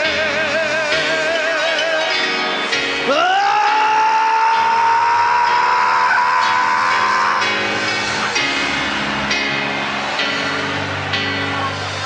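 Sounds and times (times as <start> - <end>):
man singing a long high note: 0.0 - 2.3, 3.0 - 7.5
live worship music: 0.0 - 12.0.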